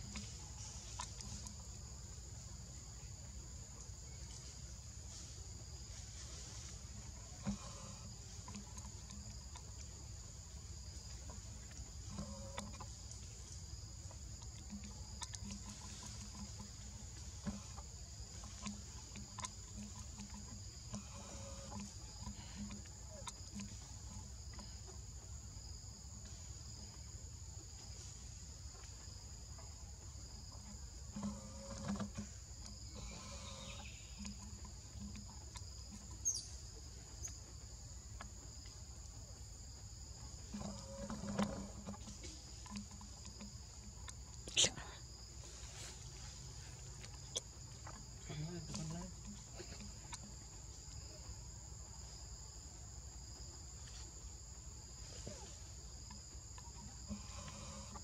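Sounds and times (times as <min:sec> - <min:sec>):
insect chorus buzzing: 0:00.0 - 0:58.0
faint knocks and rustles: 0:04.0 - 0:44.5.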